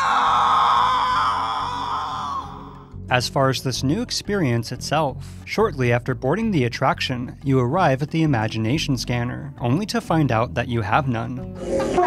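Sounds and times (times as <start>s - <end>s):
person screaming: 0.0s - 2.9s
background music: 0.0s - 12.0s.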